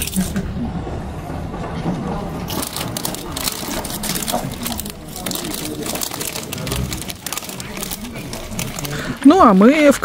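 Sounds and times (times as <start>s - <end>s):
murmur of voices: 0.0s - 10.0s
dense crackling and crunching: 1.6s - 10.0s.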